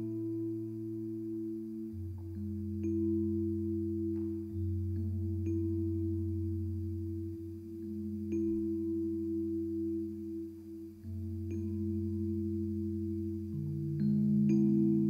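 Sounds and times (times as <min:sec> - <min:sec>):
keyboard playing sustained chords: 0:00.0 - 0:15.0.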